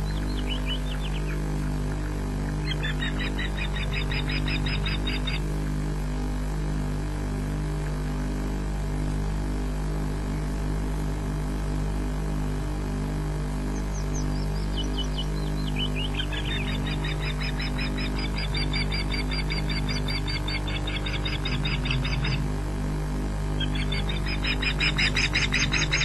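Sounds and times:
osprey high piping whistled calls: 0.0s - 1.4s, 2.6s - 5.4s, 13.8s - 22.4s, 23.6s - 26.0s
low electrical hum: 0.0s - 26.0s.

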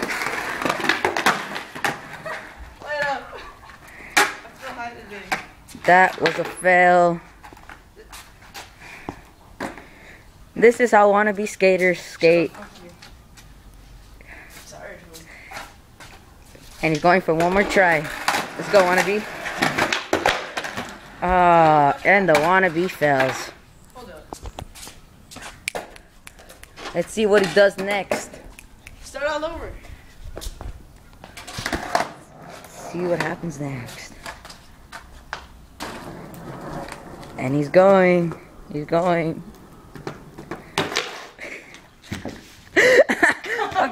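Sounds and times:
skateboard knocking on concrete: 0.0s - 7.8s, 16.9s - 24.7s, 25.6s - 42.5s
sneaker footsteps on concrete: 24.0s - 31.8s.

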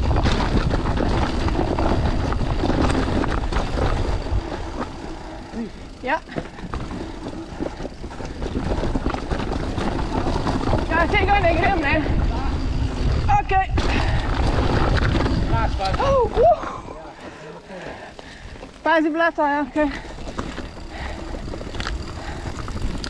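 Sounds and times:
bike rattling over roots: 0.0s - 23.0s
bike tyres rumbling on dirt: 0.0s - 23.0s.

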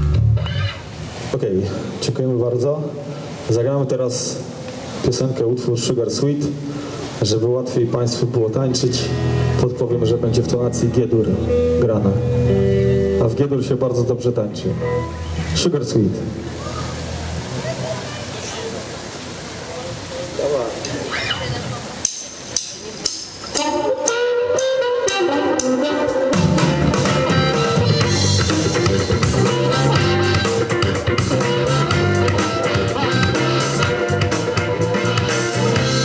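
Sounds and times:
drums: 0.0s - 0.6s, 21.8s - 36.0s
bass guitar: 0.0s - 0.8s, 8.9s - 13.7s, 14.4s - 15.6s, 23.5s - 36.0s
electric guitar: 0.0s - 0.9s, 8.9s - 13.7s, 23.5s - 36.0s
crowd noise: 4.3s - 36.0s
harmonica holding a long note: 23.6s - 36.0s.

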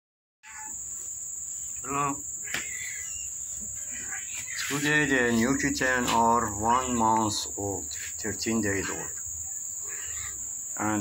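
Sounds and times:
insects chirring: 0.4s - 11.0s.

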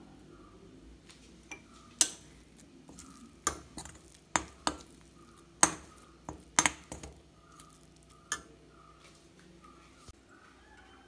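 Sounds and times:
metal spoon scraping a steel pan: 1.5s - 8.5s.

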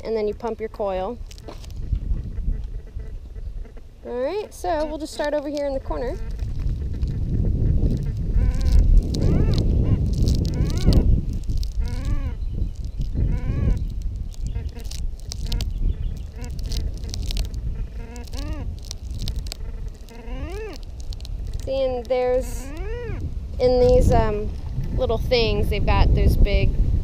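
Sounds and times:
low rumble: 0.0s - 27.0s.

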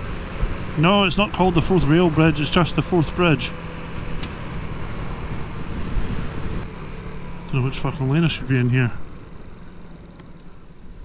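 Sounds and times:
motorcycle engine running: 0.0s - 11.0s
wind noise on microphone: 3.9s - 6.7s.

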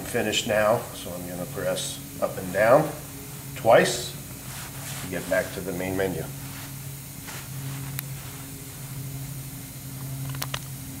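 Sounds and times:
low machinery hum: 0.0s - 11.0s.

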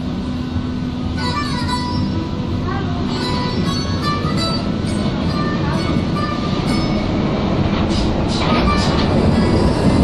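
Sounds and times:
train carriage rumble: 0.0s - 10.0s.

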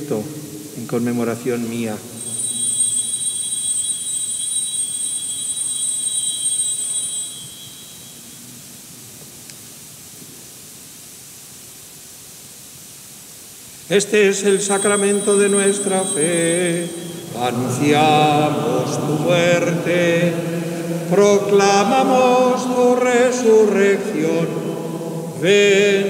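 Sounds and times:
altar bells ringing: 2.1s - 8.7s, 14.0s - 25.9s.

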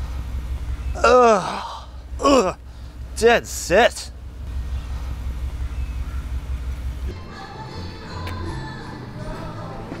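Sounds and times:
steady low rumble: 0.0s - 9.2s.

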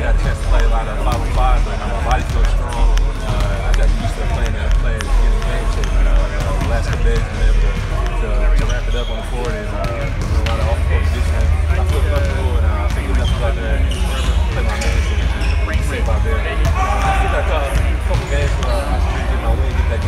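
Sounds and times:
basketballs bouncing on a court: 0.0s - 20.0s
man talking: 0.0s - 20.0s.

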